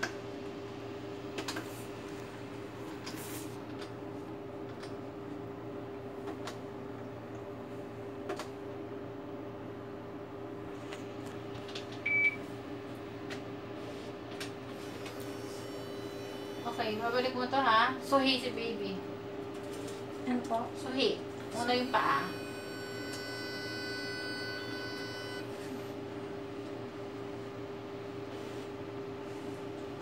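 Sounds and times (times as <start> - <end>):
low machine hum: 0.0 - 30.0
electronic whine: 15.0 - 16.8, 21.6 - 25.6.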